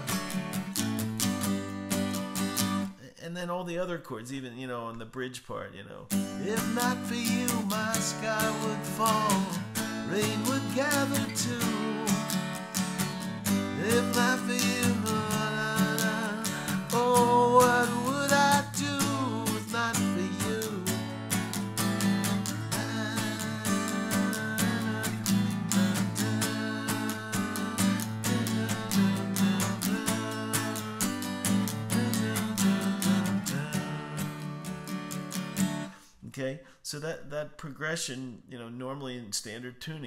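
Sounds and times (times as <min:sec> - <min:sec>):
acoustic guitar strumming chords: 0:00.0 - 0:03.0, 0:06.1 - 0:36.0.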